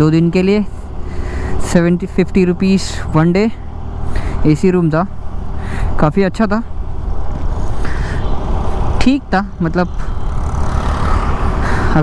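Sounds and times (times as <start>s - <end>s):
wind rush and road noise: 0.0s - 12.0s.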